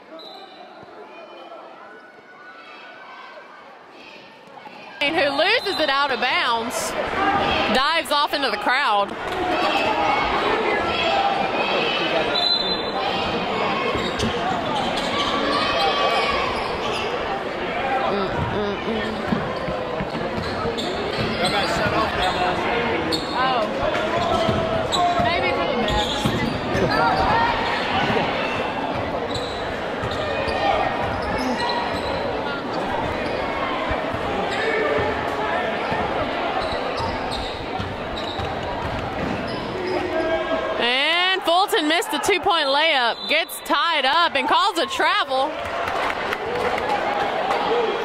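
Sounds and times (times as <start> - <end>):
crowd chatter: 0.0 - 48.0.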